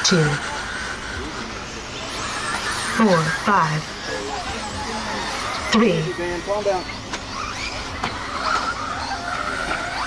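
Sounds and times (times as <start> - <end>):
electric motor whine: 0.0 - 10.0
steady background noise: 0.0 - 10.0.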